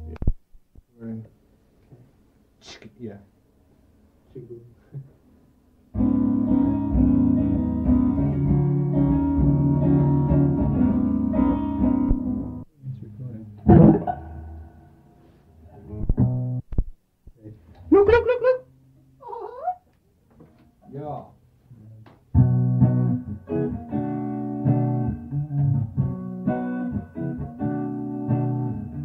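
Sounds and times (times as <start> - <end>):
guitars playing jam: 5.9 - 12.7, 13.5 - 16.9, 22.3 - 29.0
picked guitar notes: 6.0 - 15.0, 15.8 - 16.9, 22.4 - 29.0.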